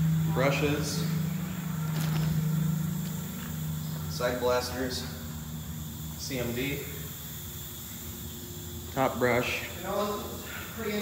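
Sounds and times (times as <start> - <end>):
car wash equipment humming: 0.0 - 11.0.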